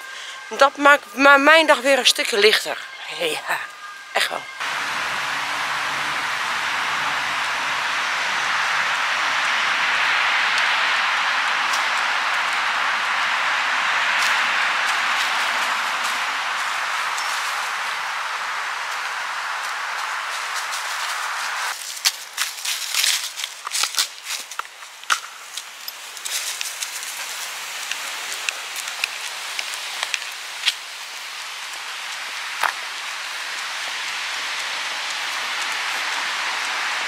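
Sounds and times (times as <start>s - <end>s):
wind through trees: 0.0s - 37.0s
footsteps on dry leaves: 4.5s - 37.0s.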